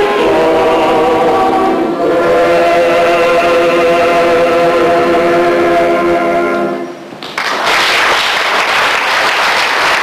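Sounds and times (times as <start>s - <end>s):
male voices holding a chord: 0.0s - 7.0s.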